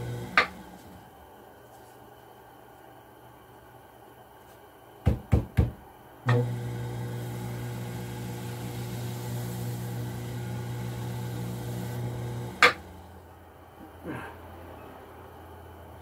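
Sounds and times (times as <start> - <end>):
potter's wheel motor hum: 0.0 - 1.2, 6.3 - 13.4.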